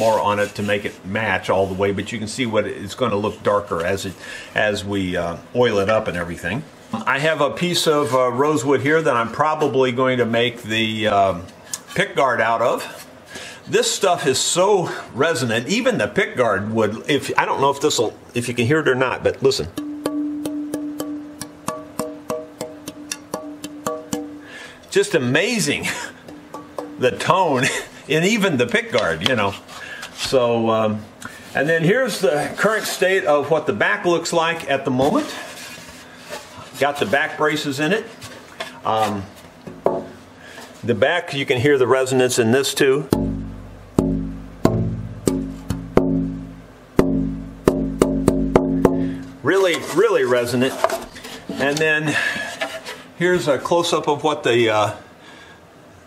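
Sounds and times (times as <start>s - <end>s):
taps on guitar body ringing: 19.7s - 24.6s, 26.2s - 27.3s, 43.1s - 49.3s
wooden board tapped and ringing: 19.8s - 24.4s, 26.3s - 27.0s.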